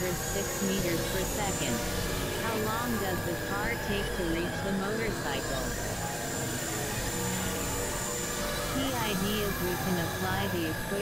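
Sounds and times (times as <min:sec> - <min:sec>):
grainy synthesizer drone: 0:00.0 - 0:11.0.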